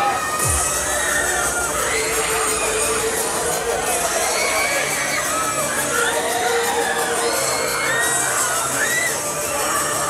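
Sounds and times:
loud fairground music: 0.0 - 10.0
riders screaming and shouting: 0.0 - 10.0.

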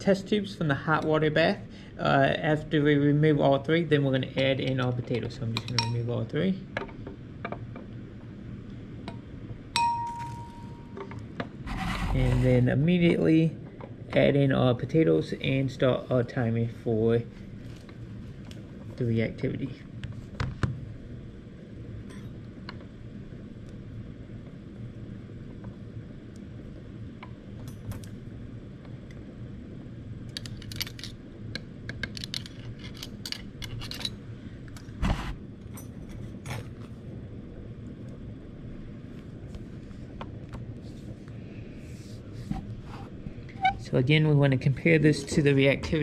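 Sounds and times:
low room hum: 0.0 - 46.0
glass test tubes clinking: 9.8 - 11.0.

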